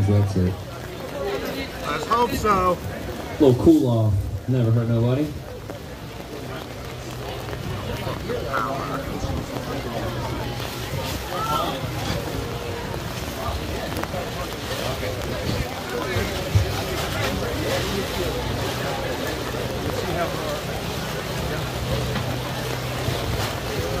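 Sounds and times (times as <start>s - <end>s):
people chattering: 0.0s - 24.0s
wind rumble on microphone: 5.4s - 24.0s.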